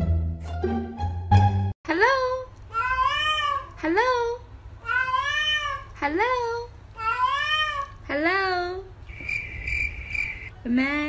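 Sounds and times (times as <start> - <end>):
cat meowing: 4.8 - 5.9, 7.0 - 8.0.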